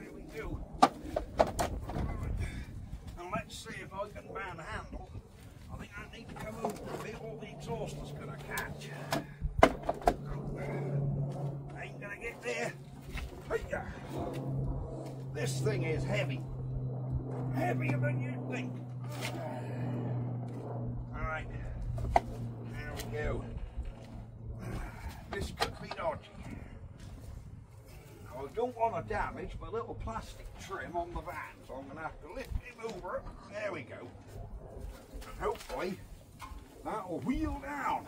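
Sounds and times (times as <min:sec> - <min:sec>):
steady low hum: 0:00.0 - 0:38.0
man breathing and grunting: 0:02.3 - 0:03.1, 0:08.8 - 0:09.6, 0:13.1 - 0:14.4, 0:19.0 - 0:20.5, 0:23.4 - 0:25.4, 0:26.3 - 0:28.4.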